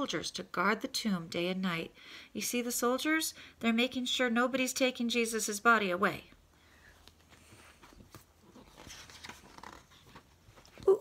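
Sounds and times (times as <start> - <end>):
faint clicks and rustles: 6.9 - 10.9.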